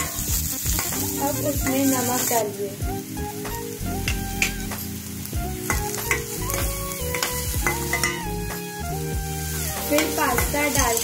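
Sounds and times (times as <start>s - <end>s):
soft background music: 0.0s - 11.0s
vegetables sizzling in oil: 0.0s - 11.0s
metal spoon scraping pan: 9.8s - 11.0s.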